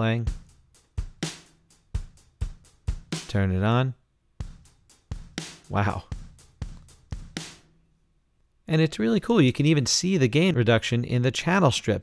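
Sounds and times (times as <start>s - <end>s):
drum kit playing a beat: 0.0s - 3.7s, 4.4s - 7.8s.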